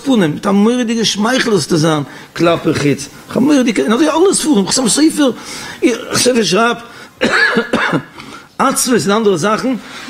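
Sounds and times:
man lecturing into a microphone: 0.0s - 10.0s.

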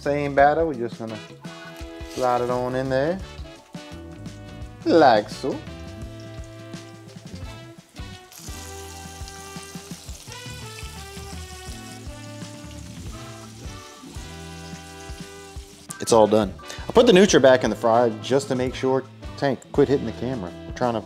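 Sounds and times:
background music: 0.0s - 21.0s
mushrooms sizzling in grease: 1.6s - 4.0s, 5.5s - 17.0s.

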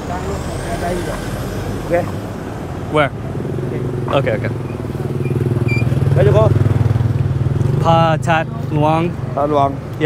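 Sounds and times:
motor vehicles rumbling: 0.0s - 10.0s.

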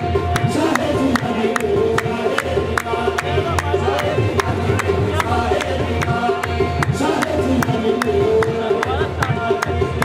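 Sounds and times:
drum accompaniment: 0.0s - 10.0s
harmonium holding notes: 0.0s - 10.0s
sharp hand claps: 0.0s - 10.0s.

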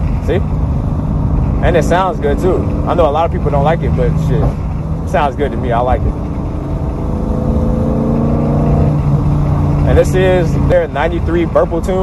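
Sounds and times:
car exhaust drone from inside: 0.0s - 12.0s.

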